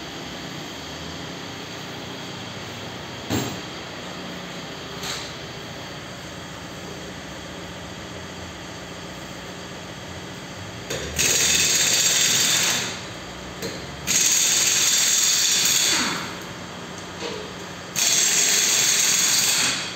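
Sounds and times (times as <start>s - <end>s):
workshop background hum: 0.0s - 19.9s.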